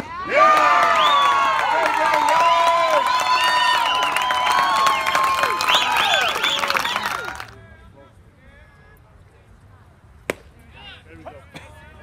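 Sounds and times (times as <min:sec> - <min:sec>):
baseball smacking into leather mitt: 0:10.3 - 0:10.5.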